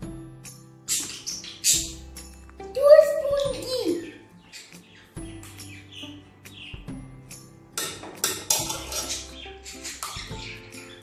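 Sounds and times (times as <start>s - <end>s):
metal spoon clinking on metal: 7.8s - 9.3s.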